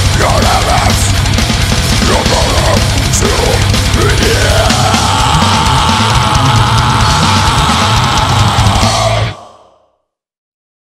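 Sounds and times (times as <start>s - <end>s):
death metal band final chord: 0.0s - 9.7s.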